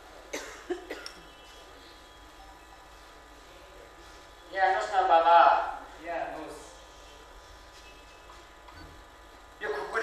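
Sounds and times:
person coughing: 0.3s - 1.2s.

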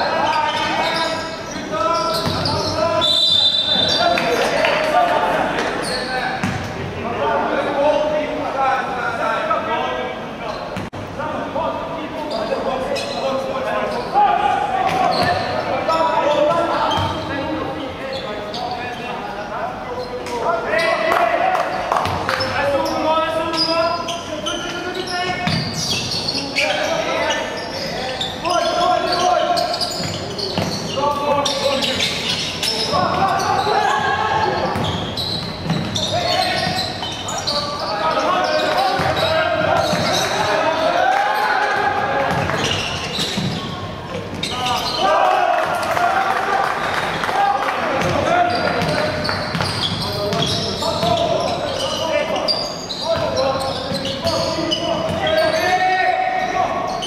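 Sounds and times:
players calling out: 11.8s - 57.0s.

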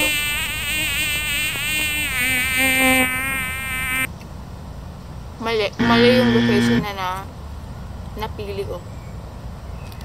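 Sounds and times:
flying insect buzzing: 0.0s - 4.1s.

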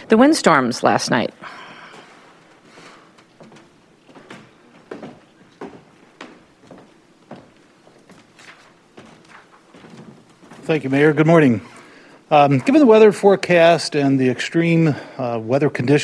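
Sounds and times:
faint footsteps: 1.4s - 13.1s.

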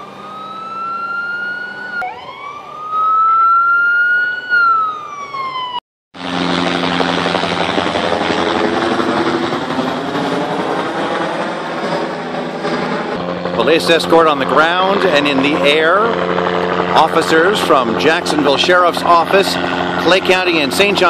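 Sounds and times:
police siren wailing: 0.0s - 21.0s
loud steady rushing noise: 6.2s - 21.0s.

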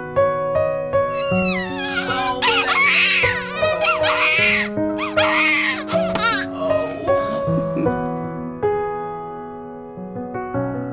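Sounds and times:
background music with held notes: 0.0s - 10.9s
newborn baby crying: 1.1s - 7.7s.

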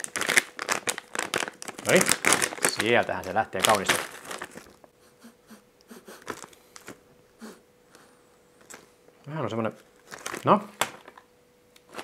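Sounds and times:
plastic bag crinkling: 0.0s - 4.9s, 6.2s - 7.0s, 9.7s - 11.2s.

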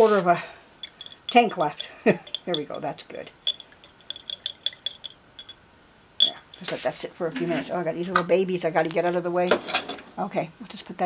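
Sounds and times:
brush clinking against glass jar: 0.8s - 5.6s, 6.2s - 6.8s.

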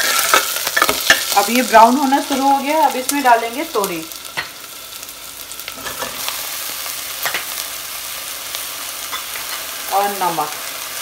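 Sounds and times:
vegetables sizzling in hot oil: 0.0s - 11.0s.

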